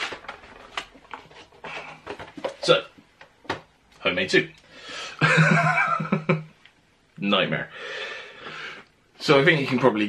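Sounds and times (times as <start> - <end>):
man speaking: 4.0 - 4.6, 7.2 - 7.7, 9.2 - 10.0.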